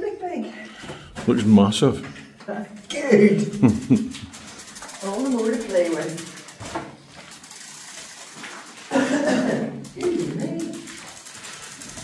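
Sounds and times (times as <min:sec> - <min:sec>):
bicycle freewheel ticking: 0:02.9 - 0:12.0.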